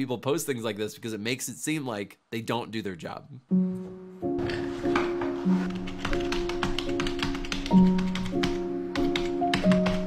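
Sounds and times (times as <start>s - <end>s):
background music with held notes: 3.5s - 10.0s
computer keyboard typing: 5.7s - 10.0s.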